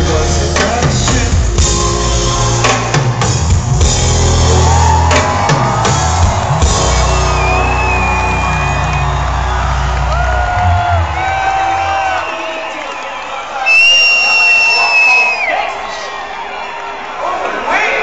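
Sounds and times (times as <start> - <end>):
loud hip-hop music: 0.0 - 11.9
crowd noise: 0.0 - 18.0.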